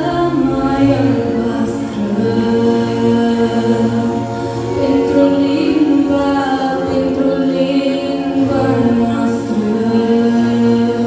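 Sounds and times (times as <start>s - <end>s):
backing music: 0.0s - 11.0s
girl singing into microphone: 0.0s - 11.0s.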